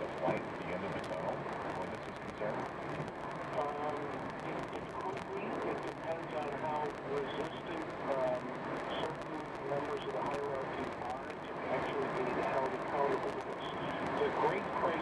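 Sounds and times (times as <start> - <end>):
radio news talk: 0.0 - 15.0.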